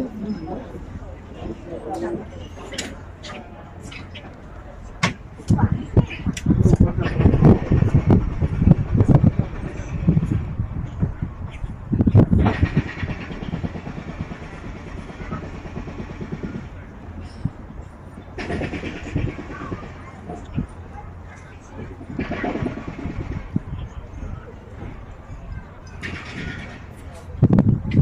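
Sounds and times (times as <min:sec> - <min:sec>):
indistinct voices: 0:00.0 - 0:28.0.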